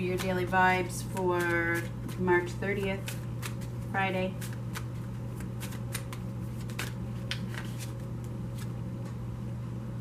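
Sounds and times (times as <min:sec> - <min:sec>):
steady low hum: 0:00.0 - 0:10.0
cards shuffling clicks: 0:03.0 - 0:08.8.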